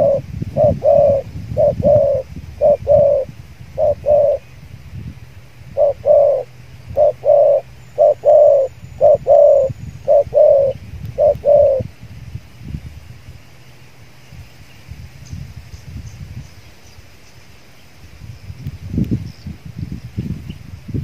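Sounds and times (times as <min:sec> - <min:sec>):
dove cooing: 0:00.0 - 0:04.5, 0:05.7 - 0:11.9.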